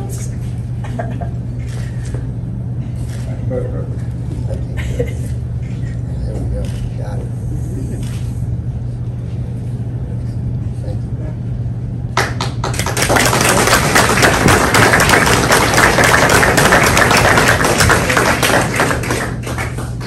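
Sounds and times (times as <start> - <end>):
audience applauding: 12.2 - 20.0.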